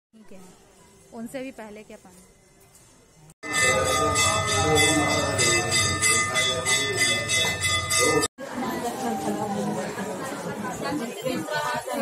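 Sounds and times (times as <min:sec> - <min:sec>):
metal bells clanging: 0:03.4 - 0:08.3.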